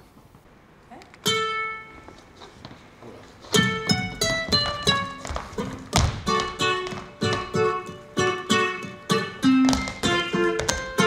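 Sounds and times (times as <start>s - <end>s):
ukulele strummed chords: 3.6s - 11.0s
heavy thump: 5.9s - 7.5s.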